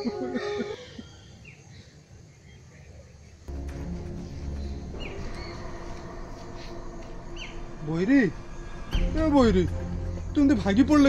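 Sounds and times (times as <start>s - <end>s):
low sustained background music: 3.5s - 11.0s
bird chirps: 4.4s - 9.4s.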